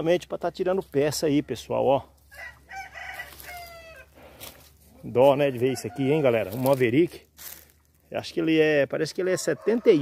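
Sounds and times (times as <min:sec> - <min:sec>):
rooster crowing: 0:02.3 - 0:04.2, 0:05.5 - 0:06.7, 0:09.3 - 0:10.0.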